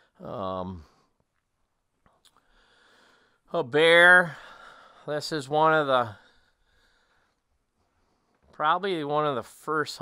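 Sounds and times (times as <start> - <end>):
faint clicks: 1.2 - 2.5.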